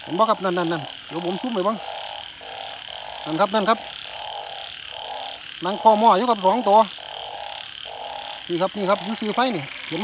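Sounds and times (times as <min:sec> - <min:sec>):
frogs calling in chorus: 0:00.0 - 0:10.0.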